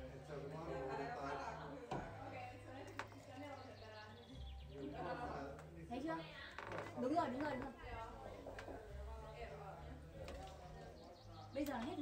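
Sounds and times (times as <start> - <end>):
people talking: 7.1 - 12.0.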